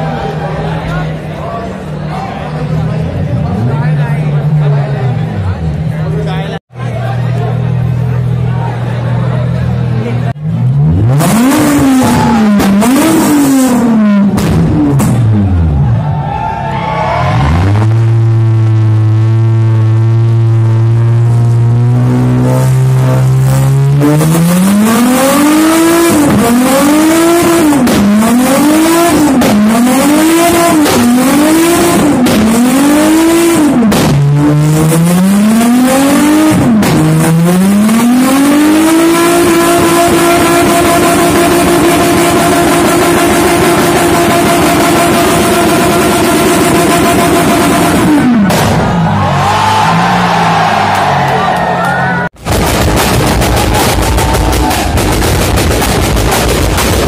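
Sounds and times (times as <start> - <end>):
car engine revving hard: 9.4 - 15.8, 17.2 - 51.1, 52.4 - 57.0.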